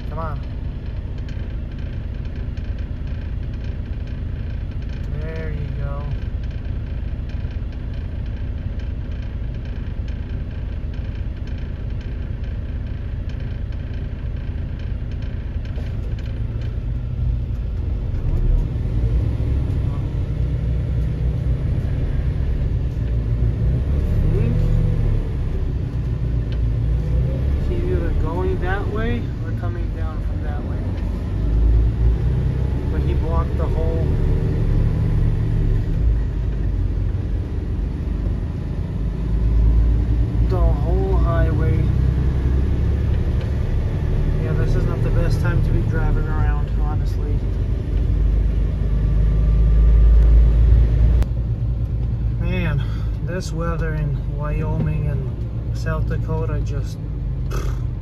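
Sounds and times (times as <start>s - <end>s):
truck diesel engine rumbling: 0.0s - 58.0s.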